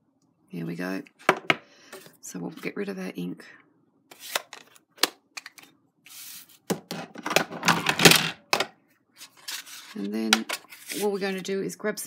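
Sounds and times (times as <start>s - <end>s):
card rustling and clattering: 5.4s - 11.3s.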